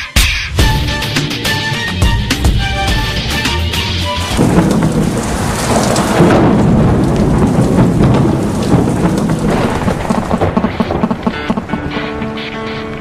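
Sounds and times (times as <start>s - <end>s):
thunder rumble: 2.0s - 13.0s
rain hiss: 2.6s - 12.4s.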